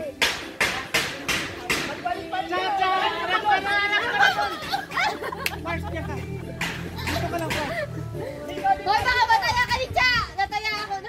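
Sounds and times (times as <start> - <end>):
people calling out and talking: 0.0 - 11.0.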